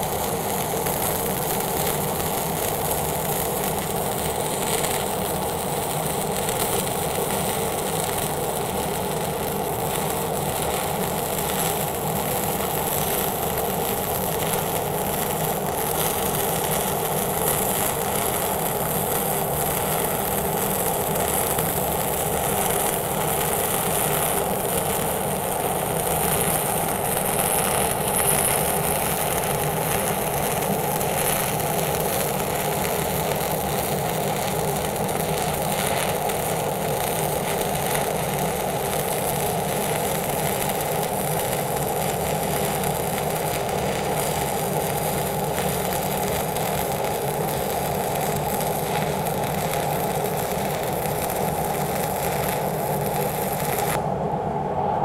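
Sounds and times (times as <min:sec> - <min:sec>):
welding arc crackling: 0:00.0 - 0:54.0.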